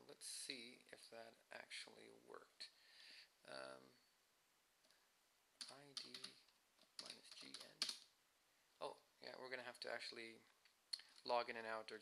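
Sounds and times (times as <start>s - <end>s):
man speaking quietly: 0.0s - 2.8s, 3.4s - 4.1s, 5.6s - 6.4s, 7.0s - 8.0s, 8.8s - 10.5s, 11.2s - 12.0s
computer keyboard keystrokes: 5.6s - 8.0s.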